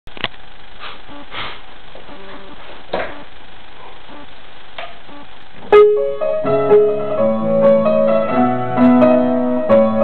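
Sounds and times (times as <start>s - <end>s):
steady hiss: 0.2s - 6.5s
short sniffs: 0.8s - 2.6s.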